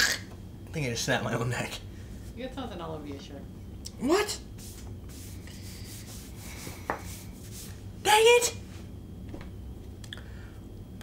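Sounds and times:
hand rubbing cloth shirt: 4.6s - 7.8s.

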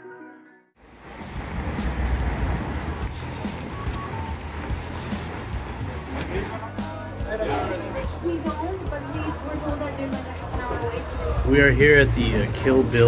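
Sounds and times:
background music: 0.0s - 13.0s
outdoor street noise: 0.8s - 13.0s.

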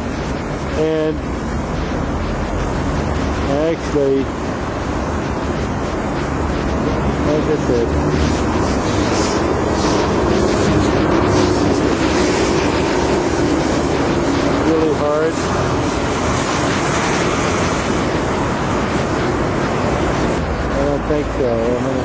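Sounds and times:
traffic: 0.0s - 22.0s
wind noise on microphone: 0.0s - 22.0s.

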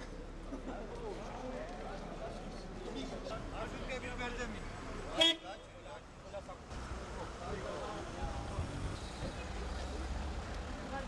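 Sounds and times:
murmur of voices: 0.0s - 11.0s
street noise: 0.0s - 11.0s.

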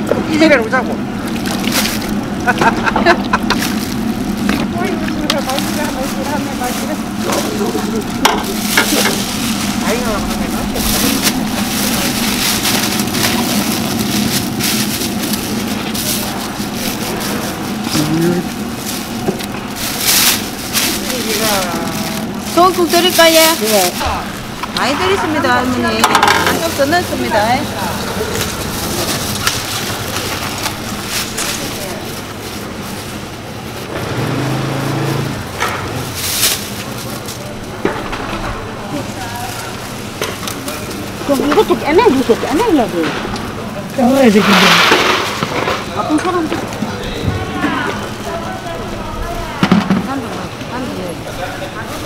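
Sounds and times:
people conversing: 0.0s - 35.4s, 36.1s - 52.0s
gas burners hissing: 0.0s - 52.0s.

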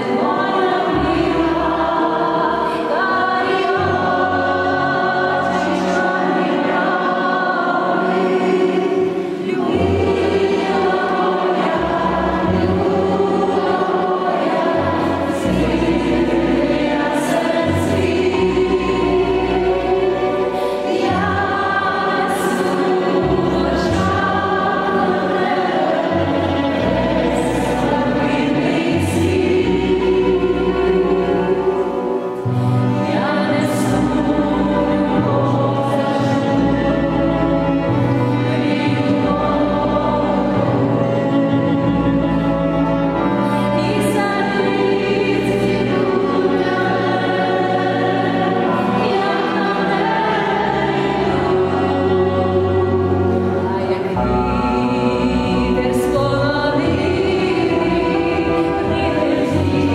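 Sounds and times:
instrumental accompaniment: 0.0s - 59.9s
many voices singing together: 0.0s - 59.9s.

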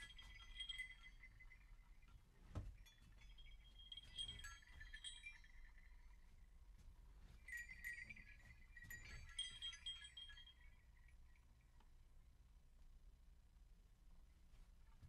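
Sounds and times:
small chimes tinkling: 0.0s - 12.0s.

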